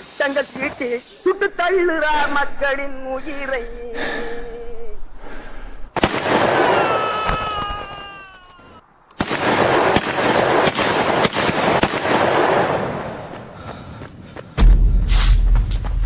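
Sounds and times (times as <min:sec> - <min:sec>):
volley of sharp gunshots: 0:06.0 - 0:06.8, 0:09.2 - 0:13.2.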